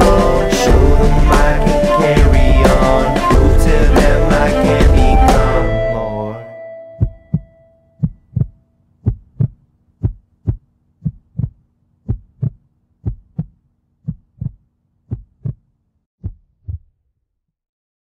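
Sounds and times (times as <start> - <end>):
heartbeat double thump: 0.0 - 5.6, 7.0 - 15.6
song final tone: 0.0 - 7.6.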